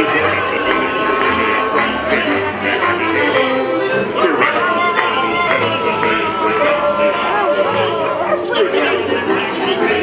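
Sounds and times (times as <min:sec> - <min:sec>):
jaunty accordion and mandolin music: 0:00.0 - 0:10.0
voices singing and calling: 0:00.0 - 0:10.0.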